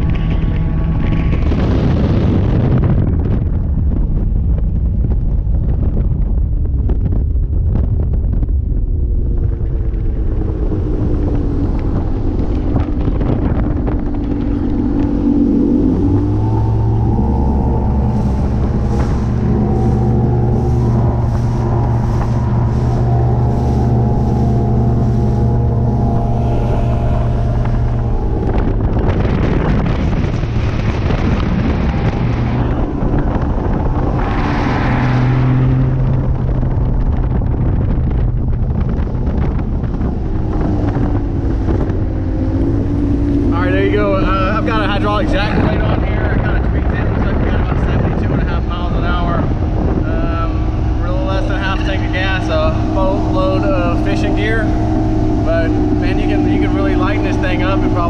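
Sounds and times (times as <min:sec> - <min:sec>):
outboard engine droning: 0:00.0 - 0:58.0
wind rushing over microphone: 0:00.0 - 0:58.0.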